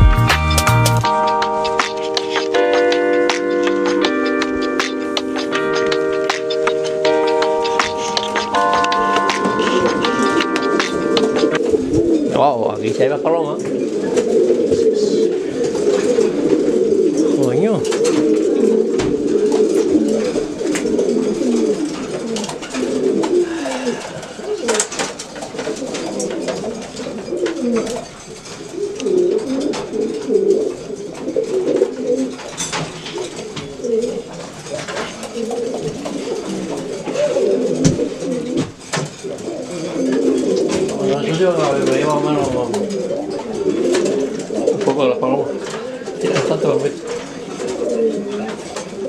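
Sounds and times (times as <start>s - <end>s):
pigeons cooing: 1.1s - 49.0s.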